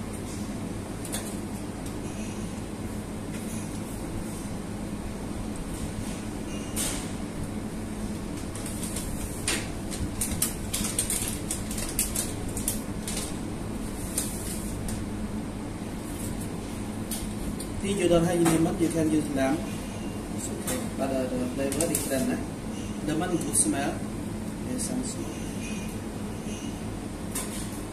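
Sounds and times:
kitchen ventilation rumble: 0.0s - 27.9s.

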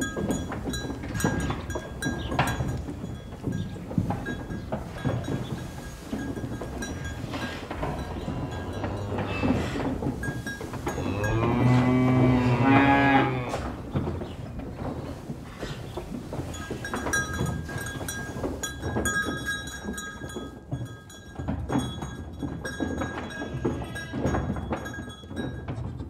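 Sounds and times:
faint high clinking tones: 0.0s - 11.9s, 15.8s - 26.0s
cow mooing: 7.4s - 9.9s, 10.9s - 13.9s.

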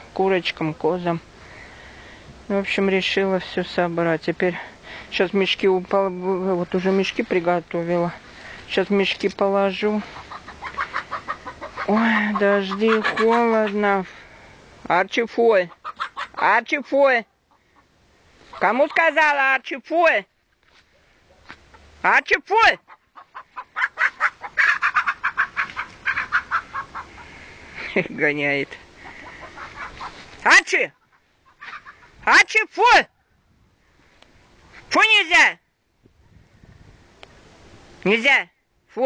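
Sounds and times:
hens clucking: 8.8s - 14.1s, 15.5s - 19.4s, 21.5s - 32.3s.

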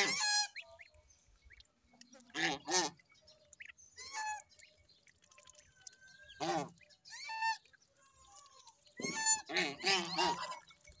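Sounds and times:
geese honking: 0.0s - 0.9s, 9.0s - 10.8s
gosling peeping: 0.0s - 11.0s.

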